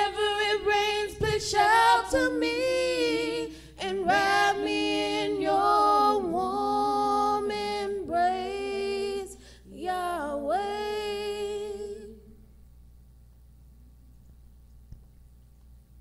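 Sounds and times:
women singing gospel unaccompanied: 0.0 - 12.5.

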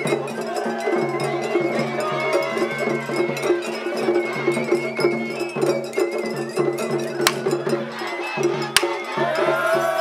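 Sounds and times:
drums beating rapid rhythm: 0.0 - 10.0.

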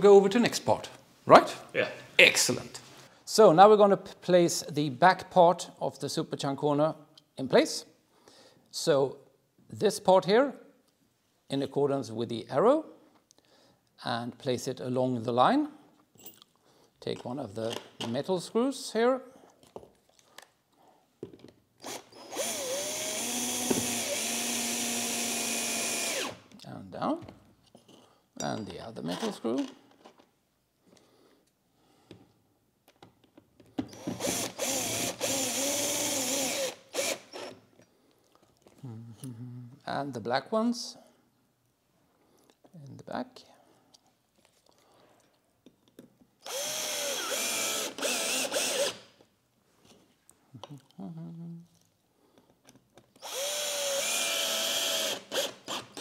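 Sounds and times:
cordless drill motor whine: 21.8 - 26.4, 33.9 - 37.6, 46.5 - 49.0, 53.2 - 55.8.

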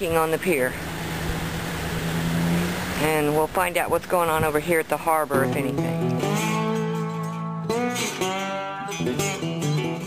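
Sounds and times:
car engine running: 0.0 - 6.0
road noise: 0.0 - 6.6.

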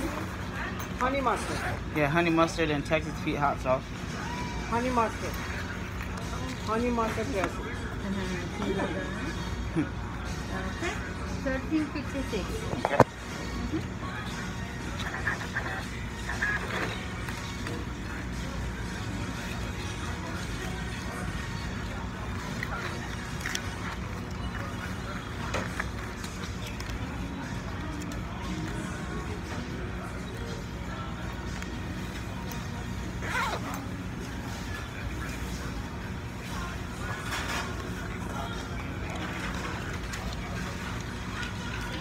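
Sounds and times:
faint voices: 0.0 - 42.0
music playing: 0.0 - 42.0.

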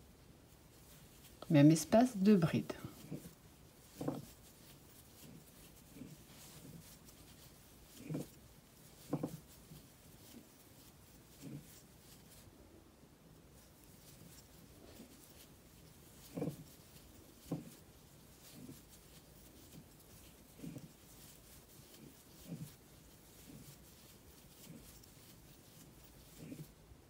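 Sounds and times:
soft yarn rustles: 0.0 - 27.0.

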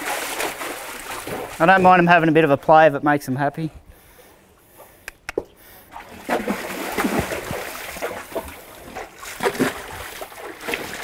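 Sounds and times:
horse splashing in water: 0.0 - 1.9, 5.9 - 11.0
sharp clicks: 5.0 - 5.5.

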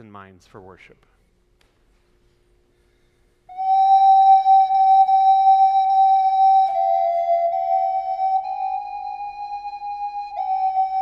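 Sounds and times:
flute long held note: 3.5 - 11.0.

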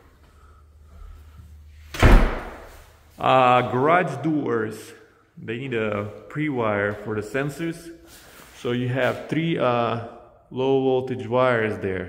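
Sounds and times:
door slamming shut: 1.9 - 2.8.

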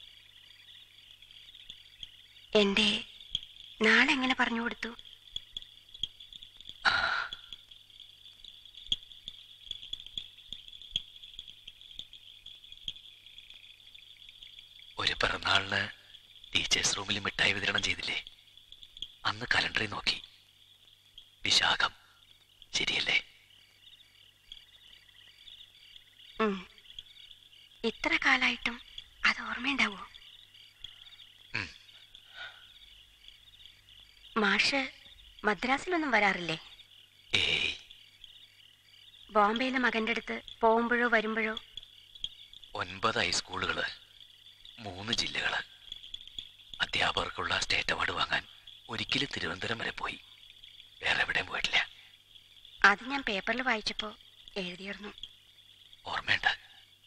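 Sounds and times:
crickets chirring: 0.0 - 57.0.

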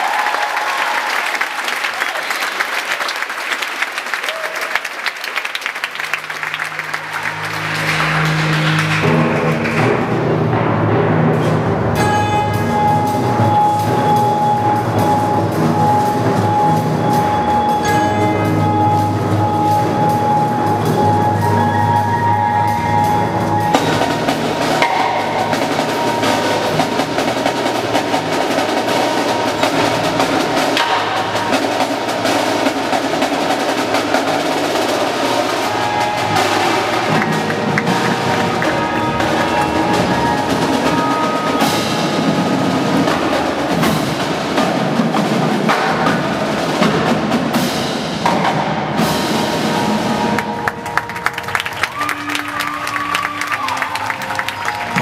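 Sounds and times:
keyboard percussion: 5.7 - 55.0
marching drums playing: 5.9 - 55.0
ringing bell-like tones: 12.3 - 32.3.

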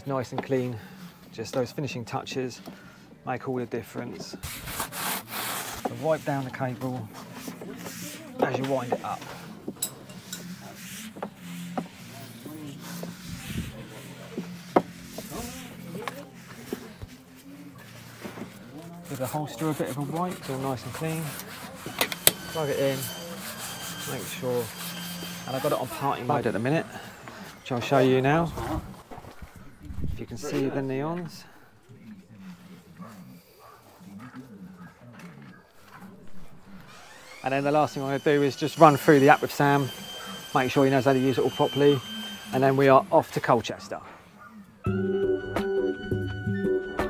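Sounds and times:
charging cable rubbing and knocking: 4.2 - 17.4, 18.0 - 26.8
faint voices: 5.9 - 44.9.

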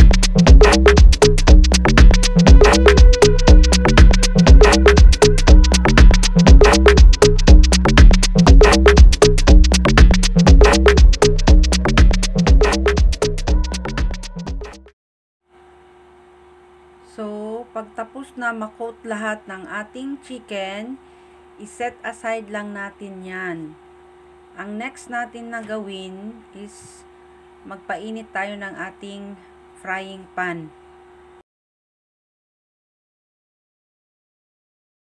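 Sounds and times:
faint electrical hum: 15.5 - 31.4.

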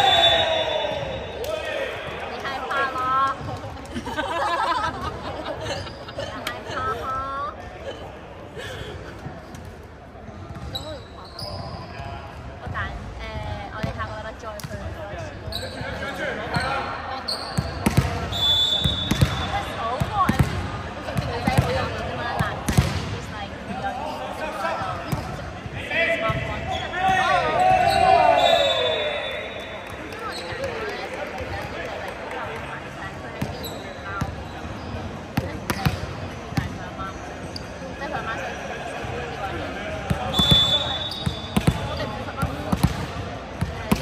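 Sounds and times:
players shouting: 0.0 - 3.1, 25.8 - 29.6.

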